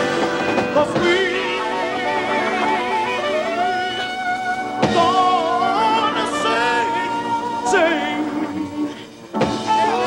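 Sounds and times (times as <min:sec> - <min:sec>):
live soul band instrumental: 0:00.0 - 0:10.0.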